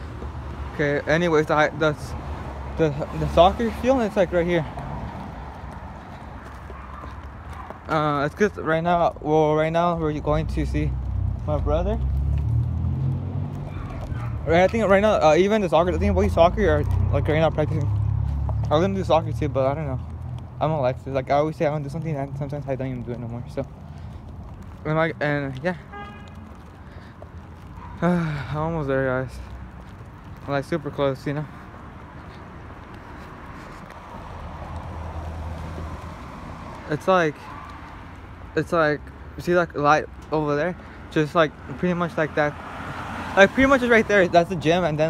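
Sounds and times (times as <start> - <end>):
footsteps on pavement: 0.0 - 45.0
low outdoor rumble: 7.6 - 32.0.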